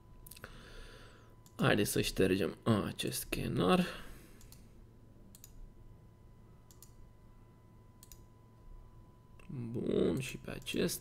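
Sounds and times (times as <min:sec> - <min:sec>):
computer mouse clicks: 0:04.4 - 0:04.7, 0:05.3 - 0:05.6, 0:06.7 - 0:07.0, 0:08.0 - 0:08.3
faint steady high tone: 0:05.3 - 0:11.0.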